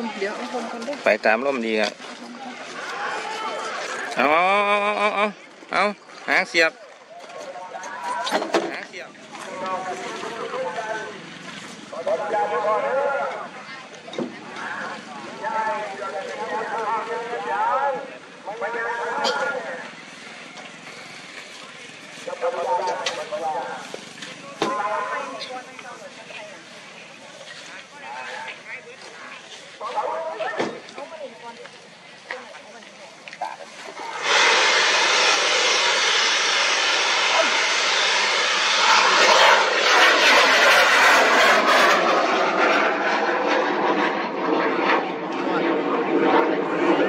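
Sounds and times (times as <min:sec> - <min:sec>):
people calling out and talking: 0:00.0 - 0:34.4
murmur of voices: 0:00.0 - 0:43.9.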